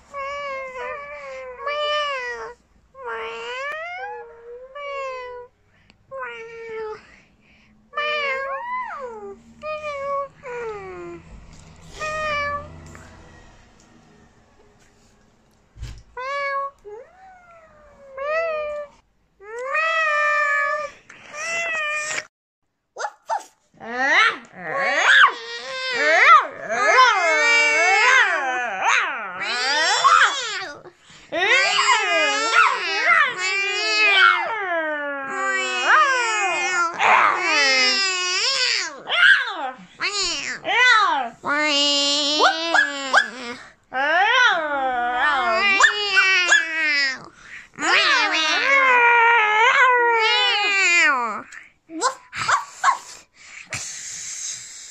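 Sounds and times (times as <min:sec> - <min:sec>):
children howling like a dog: 0:24.0 - 0:51.4.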